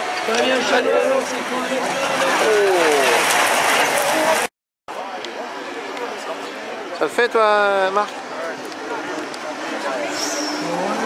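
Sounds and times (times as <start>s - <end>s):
racing cars engines and tyres: 0.0s - 11.0s.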